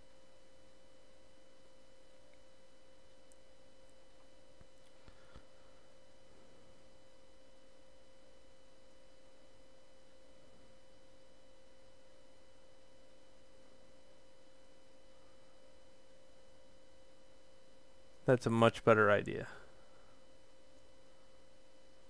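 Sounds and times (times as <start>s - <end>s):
faint steady whine: 0.0s - 22.0s.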